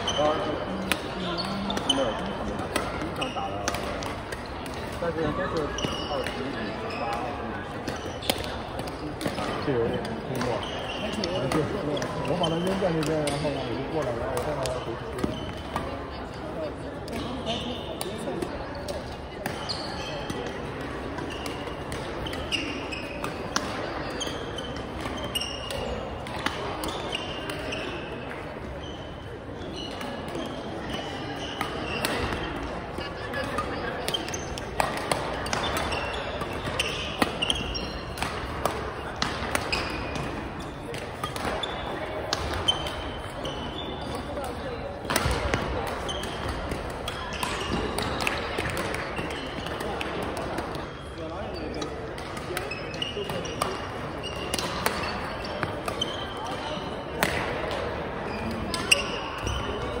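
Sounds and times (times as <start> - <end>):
shoes squeaking on gym floor: 0.0 - 15.7, 19.6 - 20.5, 21.1 - 50.0, 50.7 - 57.1, 58.2 - 60.0
background chatter: 0.0 - 60.0
rackets striking shuttlecock: 0.2 - 15.9, 29.9 - 43.4, 44.2 - 59.9.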